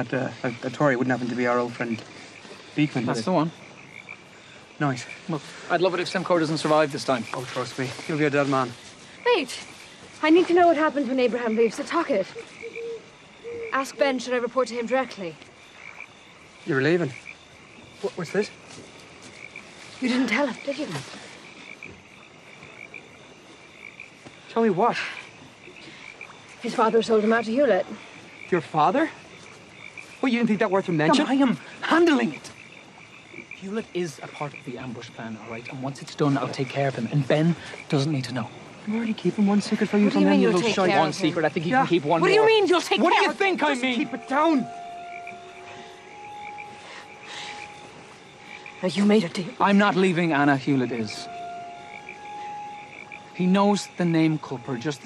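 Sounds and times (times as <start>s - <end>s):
faint background hiss: 0.0s - 55.0s
frogs calling: 0.0s - 55.0s.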